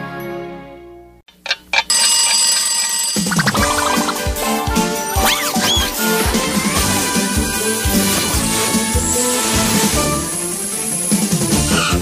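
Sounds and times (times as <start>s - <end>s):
bright ringing sound: 1.9s - 4.1s
music jingle: 1.9s - 11.6s.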